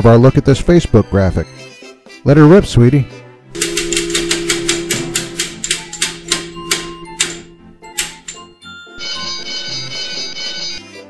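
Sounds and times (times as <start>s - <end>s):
prize wheel pointer clicking: 3.6s - 8.5s.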